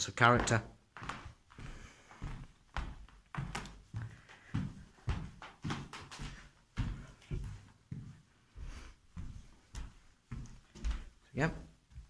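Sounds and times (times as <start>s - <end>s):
footsteps walking: 0.0s - 12.0s.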